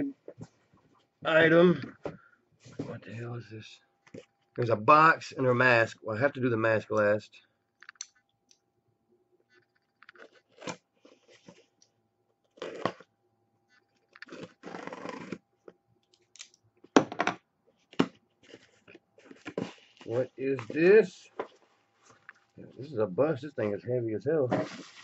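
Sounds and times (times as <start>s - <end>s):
packaging crinkling and scraping: 10.1s - 11.8s, 12.4s - 13.1s, 13.9s - 15.4s, 17.8s - 22.5s, 24.5s - 25.0s
packaging tearing: 12.5s - 13.0s, 14.2s - 15.4s.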